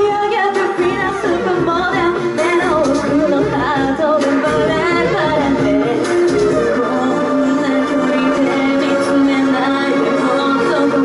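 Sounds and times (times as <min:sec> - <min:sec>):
backing music: 0:00.0 - 0:11.0
woman singing into microphone: 0:00.0 - 0:11.0.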